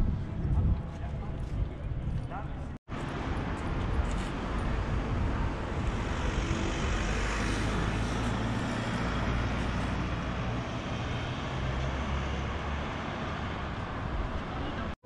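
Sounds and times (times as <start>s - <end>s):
road traffic noise: 2.8s - 15.0s
vehicle engine hum: 2.9s - 15.0s.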